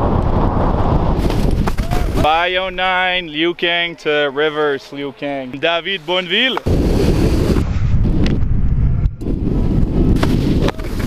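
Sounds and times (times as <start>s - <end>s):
wind rushing over microphone: 0.0s - 3.2s, 6.6s - 11.0s
skis scraping on snow: 5.9s - 7.6s.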